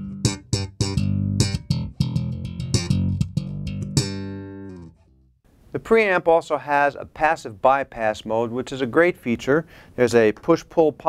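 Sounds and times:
slap electric bass: 0.0s - 5.3s.

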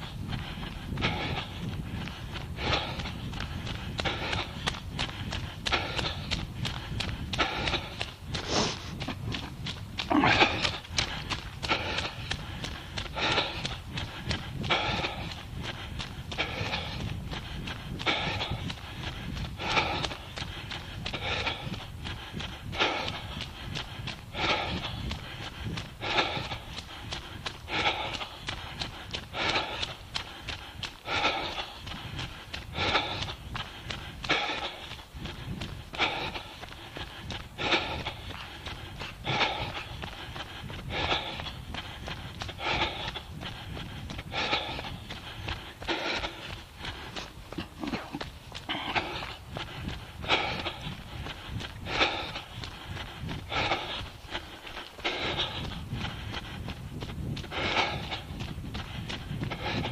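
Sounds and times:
runner heavy breathing: 0.0s - 59.9s
running footsteps on path: 0.0s - 59.9s.

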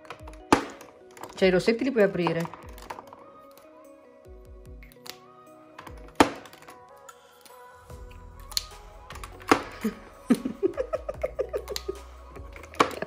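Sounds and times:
background music with held notes: 0.0s - 13.0s.

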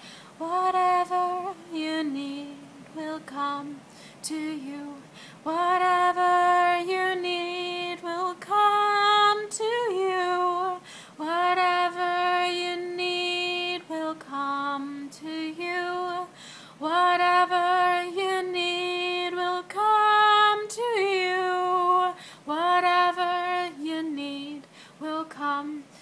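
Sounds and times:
woman singing unaccompanied: 0.3s - 26.0s.

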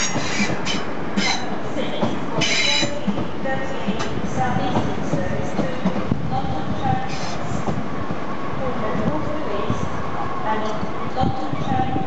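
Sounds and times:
train wheel squeals: 0.0s - 1.6s, 2.4s - 3.0s
wheels clicking over rail joints: 0.0s - 6.0s
train rolling: 0.0s - 12.0s.

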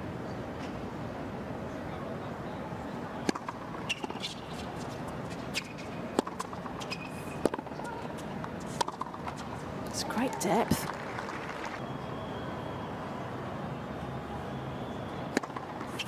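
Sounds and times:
crowd and arena hum: 0.0s - 16.0s
tennis ball struck by rackets: 3.2s - 4.9s, 5.5s - 7.8s, 8.7s - 9.4s, 15.3s - 16.0s.

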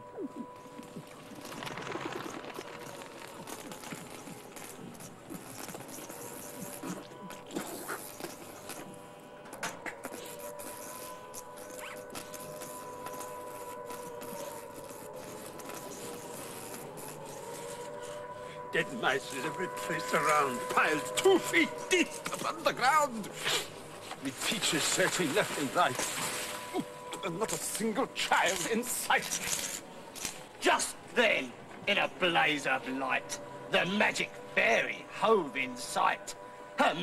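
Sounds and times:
steady droning tone: 0.0s - 37.0s
small clicks and rustles: 0.4s - 18.4s, 28.4s - 30.6s
indistinct voices: 17.7s - 29.6s.

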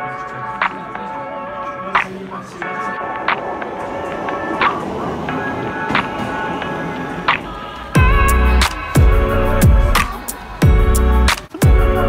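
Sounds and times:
music with held chords and sharp beat: 0.0s - 12.0s.

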